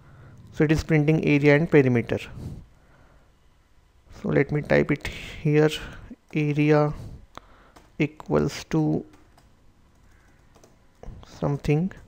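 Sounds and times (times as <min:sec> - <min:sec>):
keyboard typing: 0:07.7 - 0:08.0, 0:09.0 - 0:11.2.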